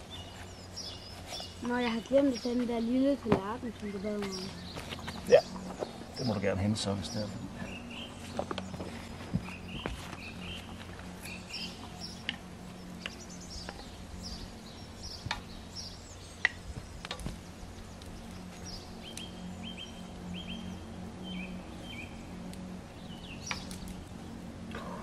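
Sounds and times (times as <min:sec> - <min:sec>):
small birds chirping: 0:00.0 - 0:25.0.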